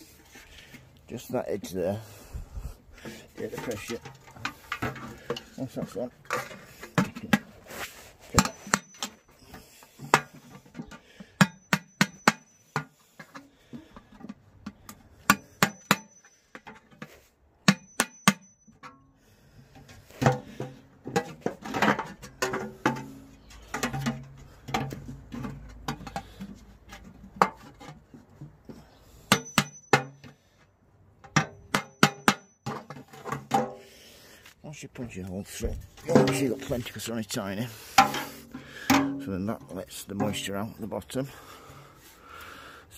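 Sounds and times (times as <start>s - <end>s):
hammer striking metal punch: 11.4s - 12.8s, 17.6s - 18.6s, 29.3s - 30.2s, 31.3s - 32.5s.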